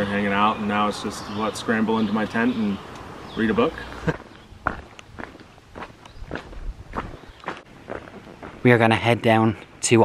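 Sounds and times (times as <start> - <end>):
footsteps on a trail: 3.9 - 8.8.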